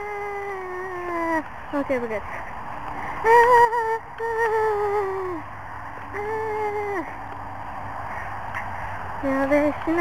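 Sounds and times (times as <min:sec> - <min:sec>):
girl crying ahh: 0:00.0 - 0:01.4
steady low hum: 0:00.0 - 0:10.0.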